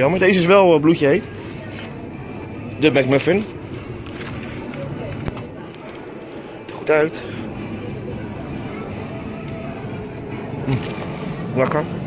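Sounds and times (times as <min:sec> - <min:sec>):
faint music: 0:00.0 - 0:12.0
steady background noise: 0:00.0 - 0:12.0.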